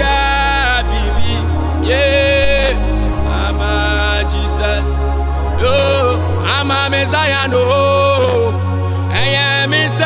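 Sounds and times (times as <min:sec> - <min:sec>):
low bass accompaniment: 0:00.0 - 0:10.0
man singing gospel song: 0:00.0 - 0:10.0.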